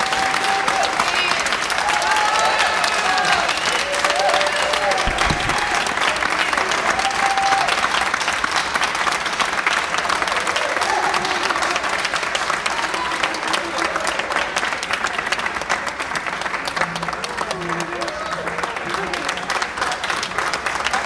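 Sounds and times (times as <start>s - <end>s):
audience clapping: 0.0s - 21.0s.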